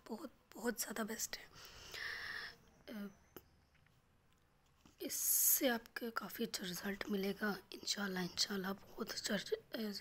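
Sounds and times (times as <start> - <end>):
woman speaking softly: 0.0 - 1.5, 2.8 - 3.2, 5.0 - 10.0.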